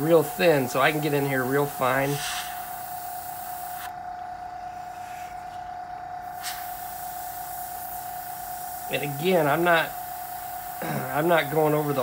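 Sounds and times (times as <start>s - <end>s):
airbrush air hiss: 0.0s - 4.0s, 4.6s - 12.0s
steady whine: 0.0s - 12.0s.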